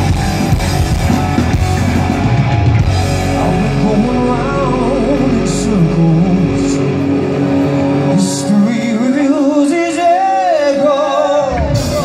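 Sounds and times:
live hard rock band: 0.0 - 12.0.

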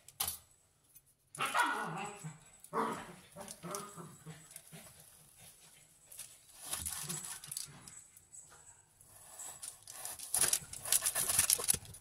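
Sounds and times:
dog barking: 1.4 - 3.1.

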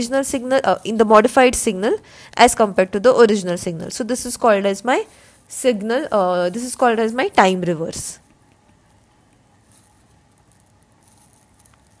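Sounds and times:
faint rustling: 8.2 - 12.0.

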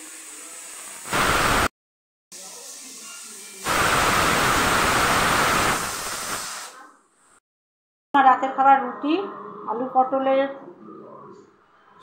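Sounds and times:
pressure cooker steam hissing: 0.0 - 1.7, 2.4 - 6.9.

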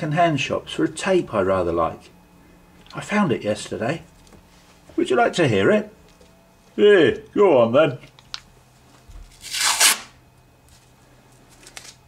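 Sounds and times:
adhesive tape ripping off roll: 9.3 - 10.2.

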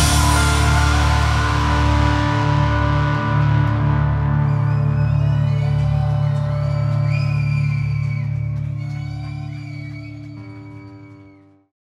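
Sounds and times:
guitar chord ringing out: 0.0 - 4.5
audience whooping: 0.0 - 11.6.

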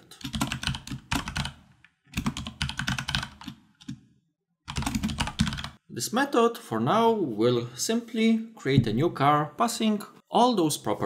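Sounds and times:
computer keyboard typing: 0.1 - 4.0, 4.7 - 5.8.

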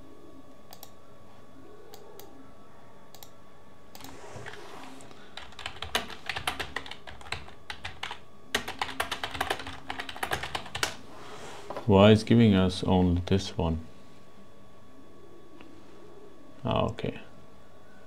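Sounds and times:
typing on computer keyboard: 5.4 - 11.0.

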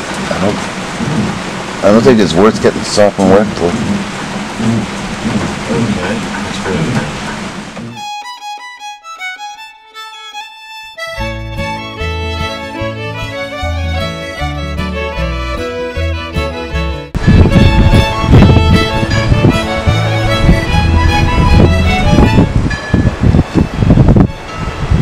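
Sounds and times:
steady rain: 0.0 - 7.9
bass backing: 0.0 - 25.0
fiddle tune: 7.8 - 25.0.

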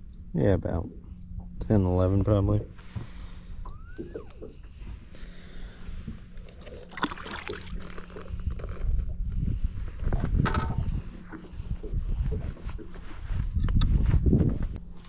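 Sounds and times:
steady low hum: 0.0 - 15.0
fish splashing into water: 6.8 - 8.0
wind on microphone: 8.4 - 14.8.

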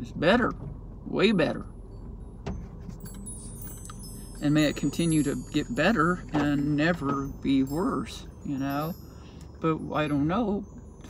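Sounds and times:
car cabin hum: 0.0 - 11.0
metallic jingle of small objects: 1.7 - 11.0.

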